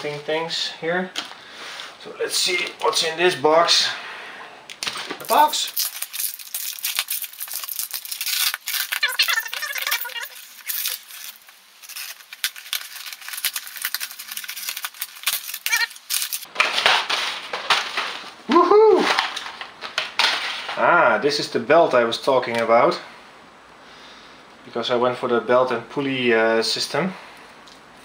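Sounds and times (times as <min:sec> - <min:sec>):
packing tape ripping: 0:04.8 - 0:18.2
packing paper crinkling: 0:04.8 - 0:18.4.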